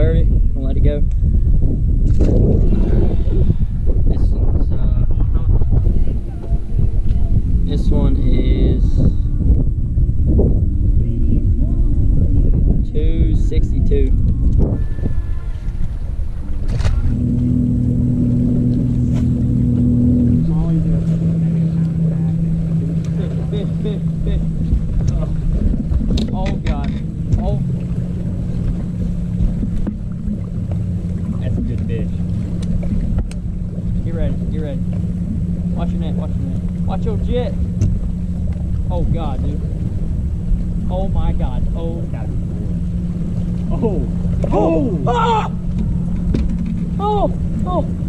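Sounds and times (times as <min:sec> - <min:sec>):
wind rumble on microphone: 0:00.0 - 0:48.0
electric trolling motor humming: 0:01.2 - 0:48.0.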